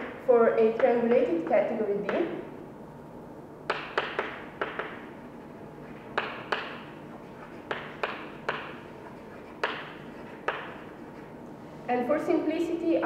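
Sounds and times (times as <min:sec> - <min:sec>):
chalk tapping on blackboard: 0:03.7 - 0:11.4.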